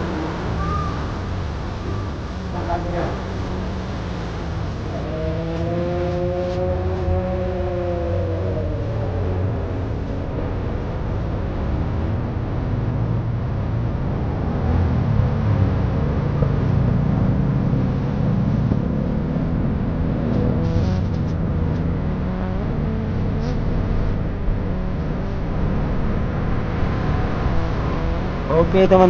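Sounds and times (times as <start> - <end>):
car engine and road rumble: 0.0 - 29.0
steady pitched hum: 0.0 - 29.0.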